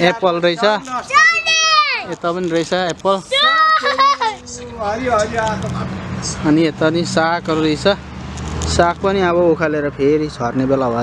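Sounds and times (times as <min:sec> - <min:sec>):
children chattering: 0:00.0 - 0:02.4, 0:03.1 - 0:05.4.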